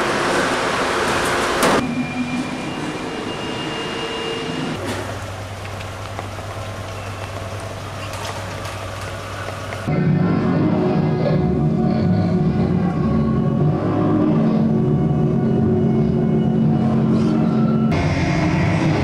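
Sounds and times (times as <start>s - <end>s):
vehicle drone with high whine: 0.0s - 19.0s
loud rushing noise: 17.9s - 19.0s.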